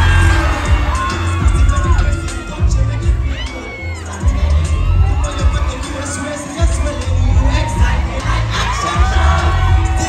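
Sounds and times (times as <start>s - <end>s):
crowd cheering and shouting: 0.0s - 10.0s
loud live music with heavy bass: 0.0s - 10.0s.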